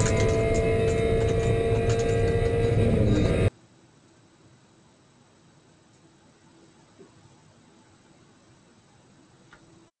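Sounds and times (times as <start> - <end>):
race car engine drone: 0.0 - 3.5.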